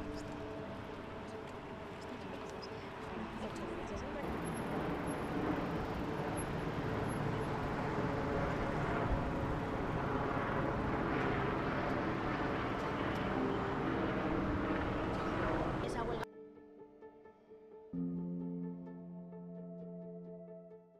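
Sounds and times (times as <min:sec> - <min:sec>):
city traffic hum: 0:00.0 - 0:16.3.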